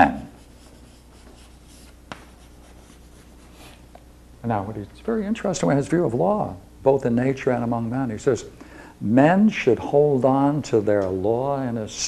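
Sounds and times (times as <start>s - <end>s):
chalk scratching on blackboard: 0.0s - 3.8s
steady low hum: 0.0s - 12.0s
chalk tap: 0.6s - 3.0s.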